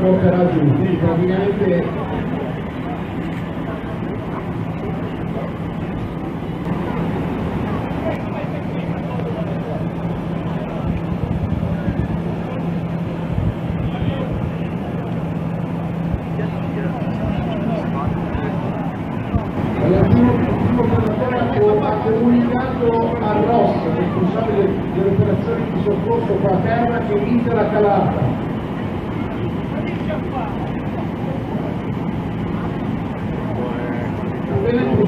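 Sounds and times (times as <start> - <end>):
crowd murmur: 0.0 - 35.0
low engine hum: 0.0 - 35.0.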